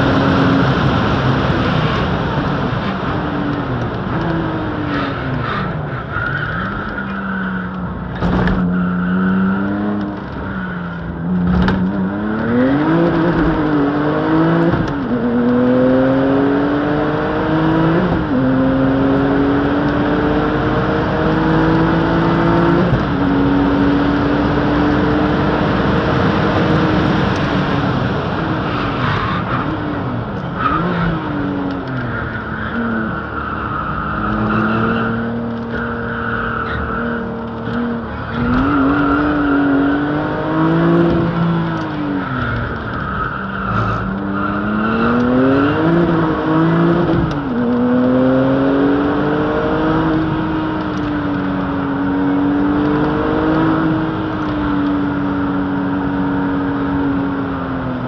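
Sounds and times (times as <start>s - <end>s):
car engine accelerating and revving: 0.0s - 58.0s.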